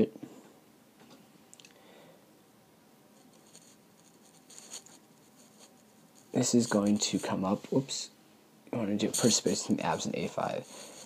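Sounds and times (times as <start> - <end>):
faint scratchy rubbing: 3.1 - 8.0, 9.0 - 11.0.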